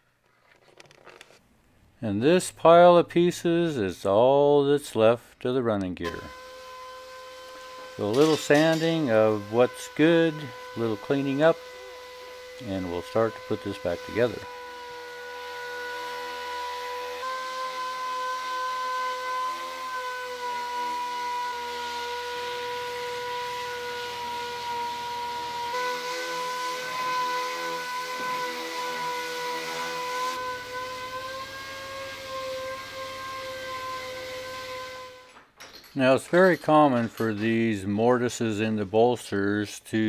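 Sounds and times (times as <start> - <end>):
air sander high whine: 6.1 - 35.3.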